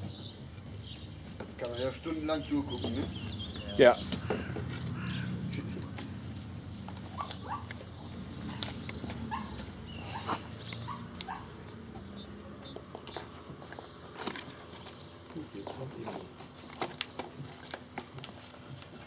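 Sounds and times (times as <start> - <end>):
puppy whining: 7.1 - 12.7.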